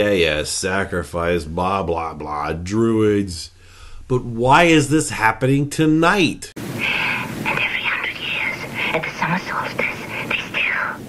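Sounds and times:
faint steady hiss: 0.0 - 11.0
person talking: 4.1 - 11.0.

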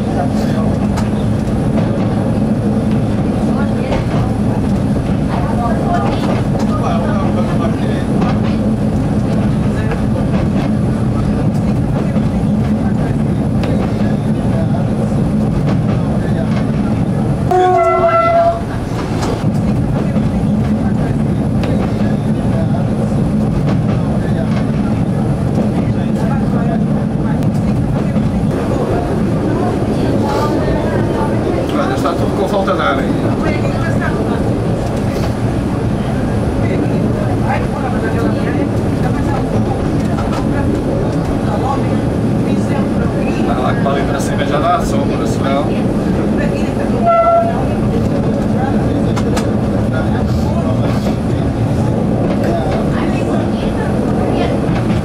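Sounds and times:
train wheel clatter: 0.0 - 28.8, 29.5 - 55.0
diesel railcar engine droning: 0.0 - 55.0
train horn: 17.5 - 18.8, 47.0 - 47.6.

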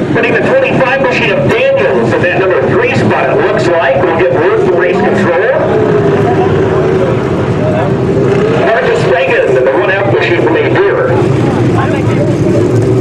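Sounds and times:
stock car engines racing: 0.0 - 13.0.

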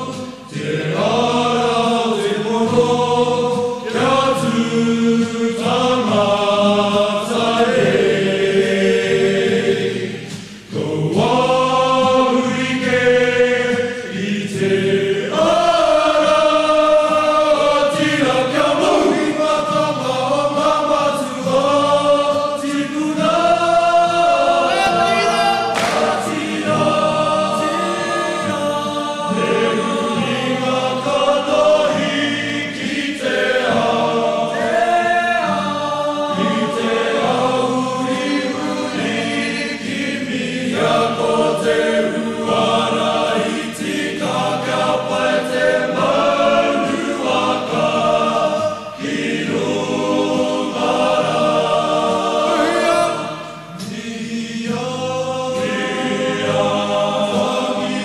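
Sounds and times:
male choir singing in harmony: 0.0 - 58.0.

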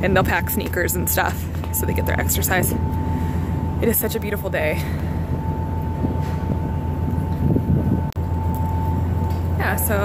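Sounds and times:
ship engines droning: 0.0 - 10.0
thin steady whine: 0.0 - 10.0
wind buffeting microphone: 0.0 - 10.0.

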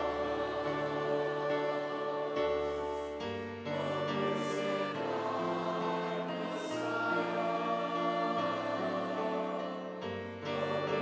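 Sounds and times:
choir singing a slow hymn: 0.0 - 11.0.

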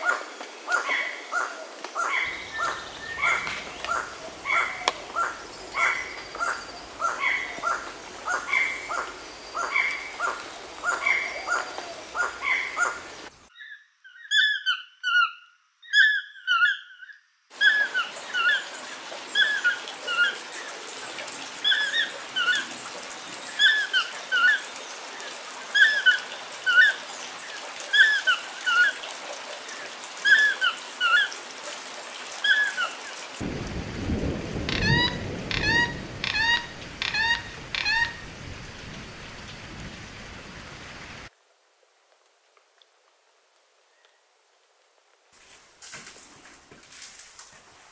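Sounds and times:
toucan calls: 0.0 - 18.6, 34.7 - 38.4.

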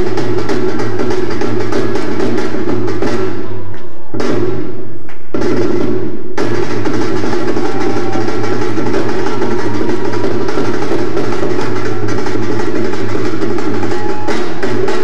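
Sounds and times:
dance music with dhol drumming: 0.0 - 3.6, 4.2 - 15.0.

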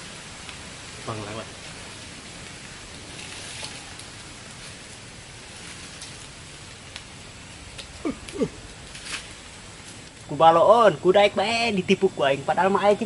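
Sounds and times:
faint ticks and rustles: 0.0 - 10.6
steady outdoor hiss: 0.0 - 13.0.

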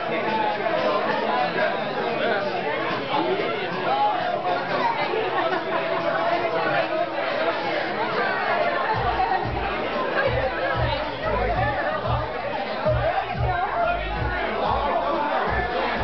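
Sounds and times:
crowd chatter: 0.0 - 16.0
music with pulsing bass beat: 9.0 - 16.0.

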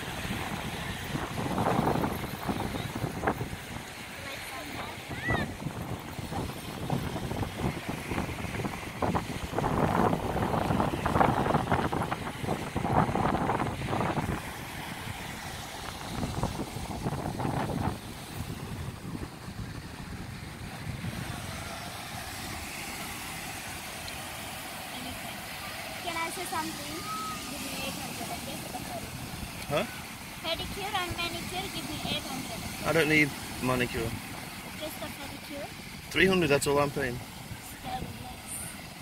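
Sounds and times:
wind on microphone: 0.0 - 24.3.

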